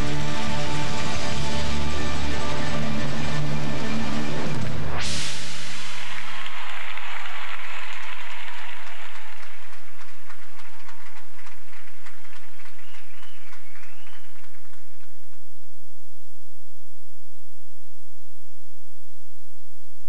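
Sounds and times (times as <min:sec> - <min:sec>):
audience applauding: 0:05.6 - 0:15.4.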